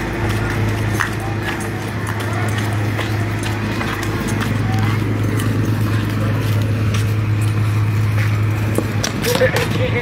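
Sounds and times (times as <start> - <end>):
people talking: 0.0 - 7.6, 8.3 - 10.0
small engine droning: 0.0 - 10.0.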